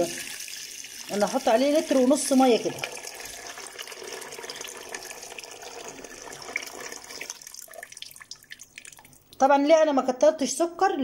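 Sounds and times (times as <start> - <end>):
water pouring into a metal pot: 0.0 - 9.3
water dripping: 0.0 - 9.5.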